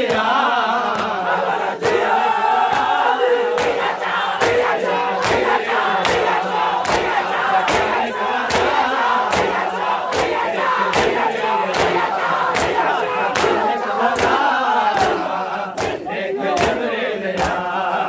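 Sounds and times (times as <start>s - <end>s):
crowd chanting and shouting: 0.0s - 18.0s
hand slaps on chests: 0.1s - 1.2s, 1.8s - 16.8s, 17.4s - 17.6s.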